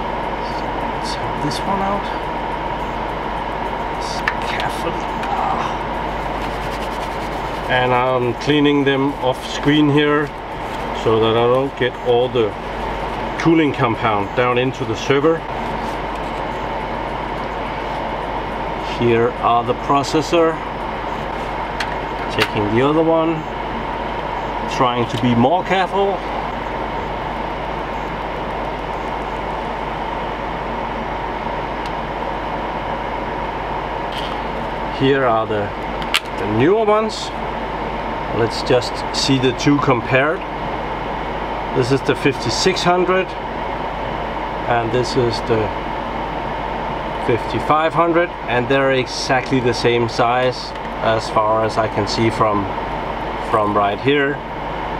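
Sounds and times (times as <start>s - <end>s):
cooling fans rushing: 0.0s - 54.9s
faint high whine: 0.0s - 54.9s
low electrical hum: 0.0s - 54.9s.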